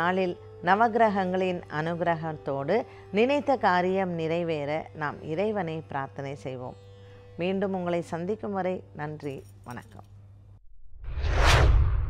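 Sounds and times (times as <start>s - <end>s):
deep low rumble: 10.8s - 12.0s
whoosh sound effect: 10.9s - 12.0s.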